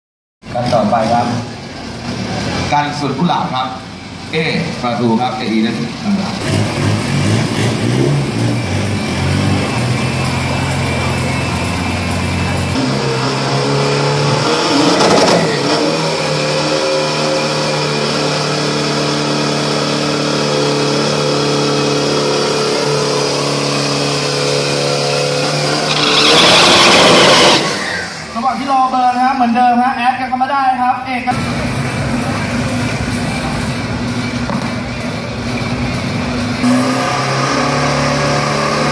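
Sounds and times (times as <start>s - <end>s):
truck engine revving: 0.4s - 28.8s, 31.3s - 38.9s.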